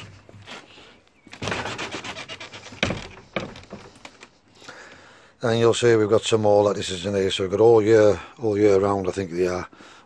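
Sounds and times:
rubbing and rustling: 0:00.0 - 0:04.5.

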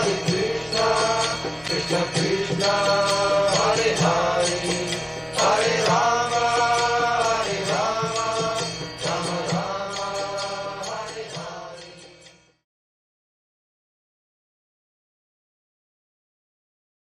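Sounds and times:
person singing a chant: 0:00.0 - 0:12.2
instrumental accompaniment: 0:00.0 - 0:12.6.

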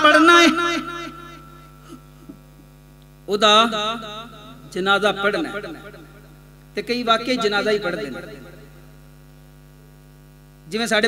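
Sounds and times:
preacher's voice echoing: 0:00.0 - 0:02.0, 0:03.3 - 0:06.2, 0:06.8 - 0:08.8
electrical mains hum: 0:00.0 - 0:11.0.

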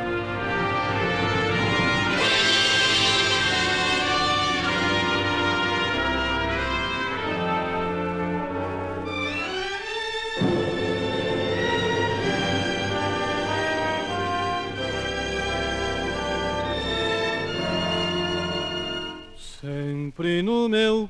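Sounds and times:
orchestral ballad introduction: 0:00.0 - 0:19.6.

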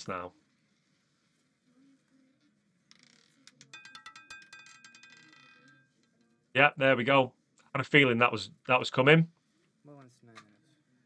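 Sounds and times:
roulette ball clattering: 0:02.8 - 0:06.5.

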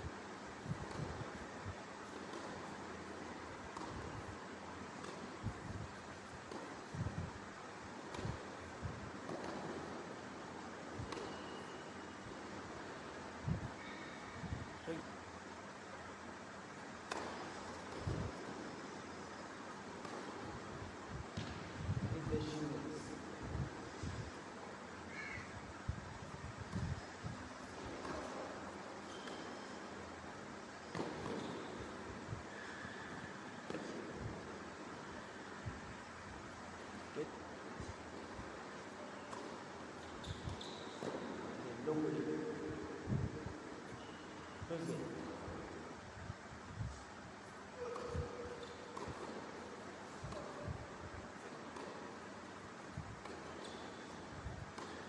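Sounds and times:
faint room tone hiss: 0:00.0 - 0:55.0
racket striking tennis ball: 0:00.6 - 0:07.3, 0:08.0 - 0:11.8, 0:17.0 - 0:18.9, 0:19.8 - 0:21.7, 0:26.6 - 0:32.2, 0:33.6 - 0:34.6, 0:37.8 - 0:41.6, 0:47.8 - 0:55.0
tennis ball bouncing: 0:00.6 - 0:13.2, 0:16.9 - 0:21.8, 0:26.6 - 0:32.3, 0:33.6 - 0:35.4, 0:37.8 - 0:41.6, 0:47.8 - 0:55.0.

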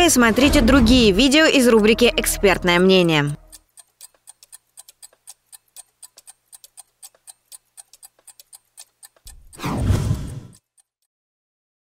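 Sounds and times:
clock ticking: 0:00.0 - 0:11.1
transition whoosh: 0:09.4 - 0:10.6.

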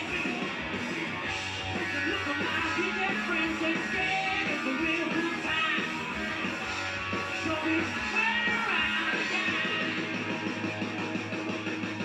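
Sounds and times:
rock music with guitar: 0:00.0 - 0:12.0.

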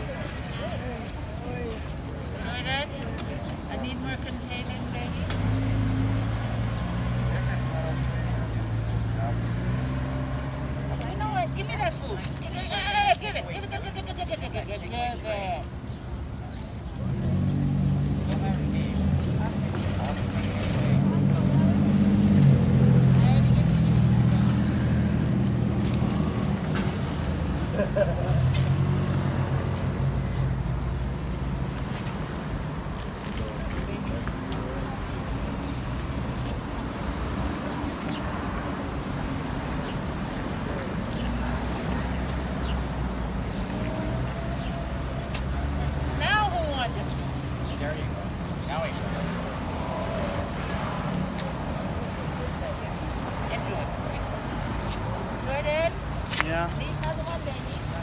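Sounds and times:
low rumble of street traffic: 0:00.0 - 0:58.0.

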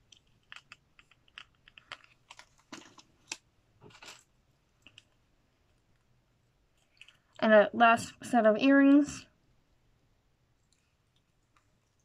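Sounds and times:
faint clicks and taps: 0:04.8 - 0:06.1, 0:10.6 - 0:12.0.

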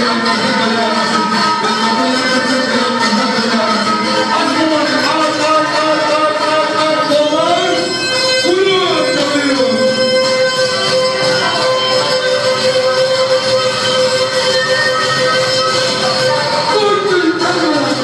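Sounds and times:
fiddle playing folk dance music: 0:00.0 - 0:18.0.

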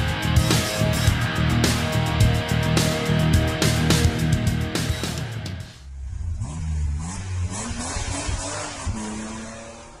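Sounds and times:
car engine revving and accelerating: 0:06.0 - 0:10.0.

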